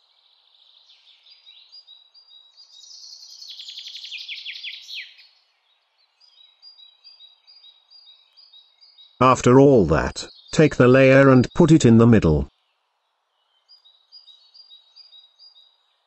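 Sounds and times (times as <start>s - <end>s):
birdsong with chirps and trill: 0.0s - 16.0s.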